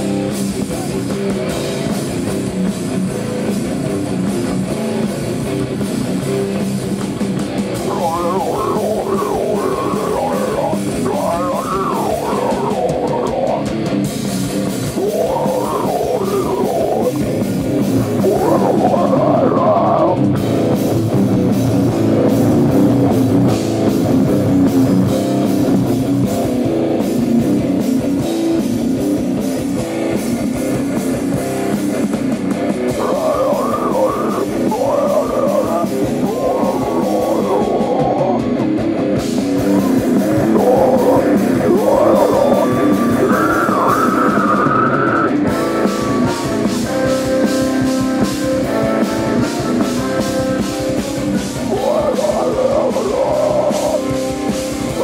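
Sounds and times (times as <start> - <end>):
bass guitar: 0.0 - 55.0
distorted electric guitars: 0.0 - 55.0
drum kit: 0.0 - 55.0.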